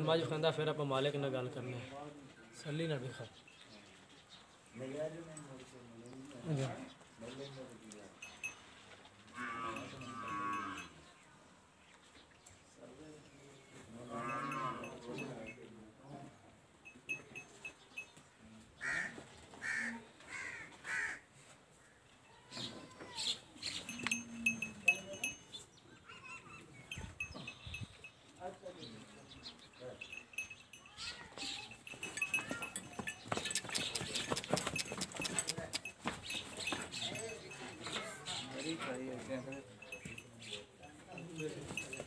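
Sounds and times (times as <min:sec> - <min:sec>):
animal calls and chirps: 0:22.3 - 0:27.9, 0:29.4 - 0:38.8.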